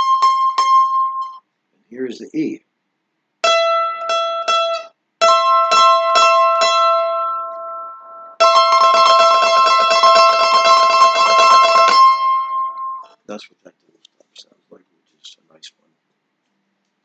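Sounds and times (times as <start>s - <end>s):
mandolin picking: 0.0s - 1.4s, 3.4s - 13.2s.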